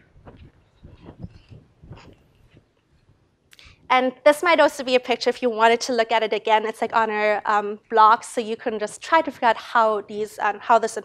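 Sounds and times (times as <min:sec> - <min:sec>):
faint clicks and rustles: 0:00.0 - 0:03.6.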